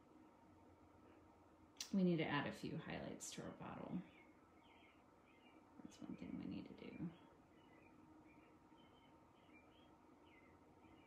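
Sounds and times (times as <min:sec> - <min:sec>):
faint high-pitched chirps: 0:04.0 - 0:11.0.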